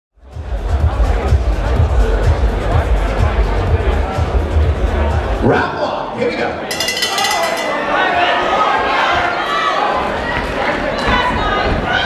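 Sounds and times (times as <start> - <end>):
crowd shouting and chattering: 0.2 - 12.0
boxing ring bell ringing: 6.7 - 8.4.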